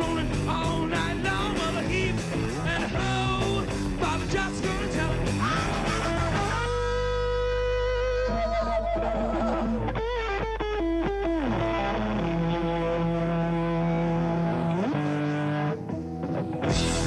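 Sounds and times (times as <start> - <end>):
man singing lead vocal: 0.0 - 7.8
hard rock band playing: 0.0 - 8.2, 9.6 - 17.0.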